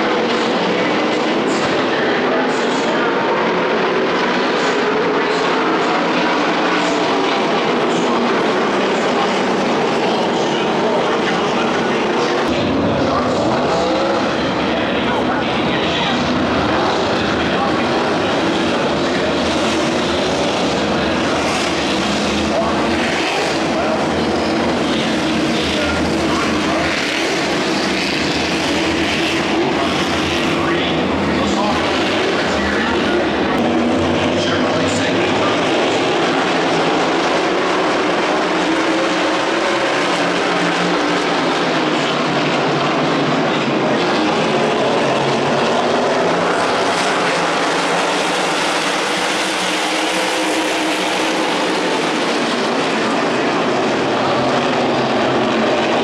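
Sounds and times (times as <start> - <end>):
race car engines droning: 0.0 - 56.0
voices: 0.0 - 56.0.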